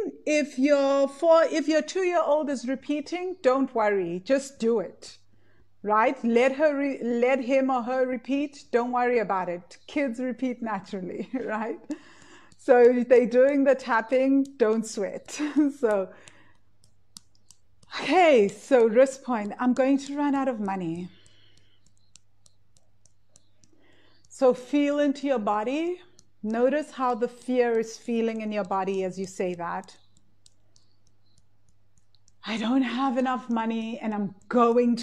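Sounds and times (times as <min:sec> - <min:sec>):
faint sharp clicks: 0:11.3 - 0:25.4, 0:26.0 - 0:32.5.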